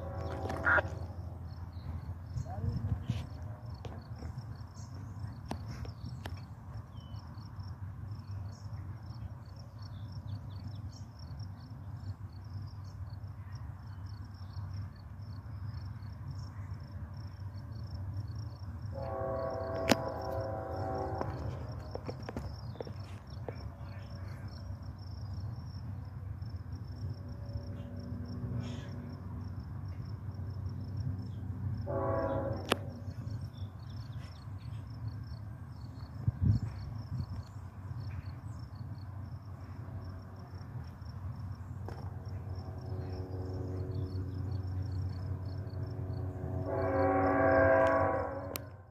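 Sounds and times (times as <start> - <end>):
locomotive air horn chord: 0.0 - 1.2, 18.9 - 22.0, 31.8 - 33.2, 46.3 - 48.9
crickets chirping: 0.0 - 48.9.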